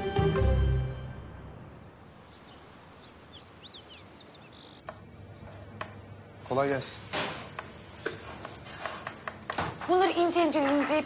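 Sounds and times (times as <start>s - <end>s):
faint outdoor ambience: 0.0s - 11.0s
birds chirping: 1.6s - 6.4s.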